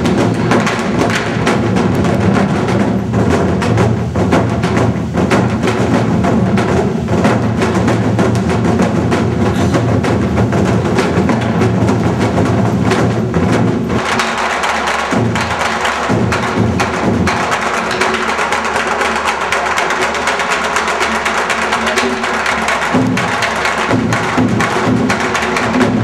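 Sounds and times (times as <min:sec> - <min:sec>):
other percussion: 0:00.0 - 0:26.0
sticks striking drums: 0:00.0 - 0:26.0.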